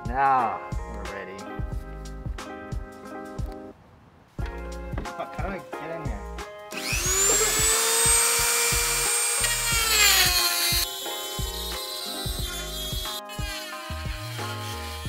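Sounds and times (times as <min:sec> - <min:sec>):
music with steady beat: 0:00.0 - 0:03.7, 0:04.4 - 0:15.0
rotary tool cutting metal: 0:06.8 - 0:15.0.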